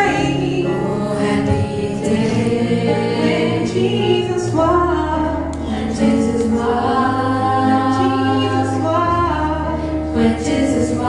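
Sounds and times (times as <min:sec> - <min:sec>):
low keyboard accompaniment: 0:00.0 - 0:11.0
women singing gospel: 0:00.0 - 0:11.0.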